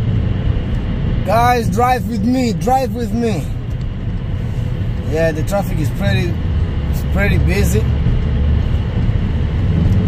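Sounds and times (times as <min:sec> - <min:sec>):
road rumble inside a car: 0:00.0 - 0:10.0.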